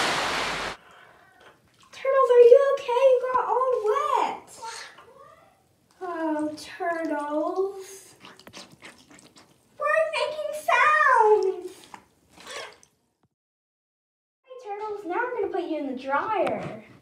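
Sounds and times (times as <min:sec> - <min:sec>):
water splashing in a sink: 0:06.0 - 0:13.0.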